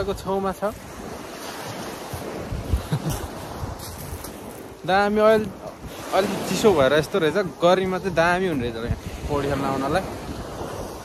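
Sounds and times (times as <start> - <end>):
rushing wind: 0.0 - 11.0
wind buffeting microphone: 0.0 - 11.0.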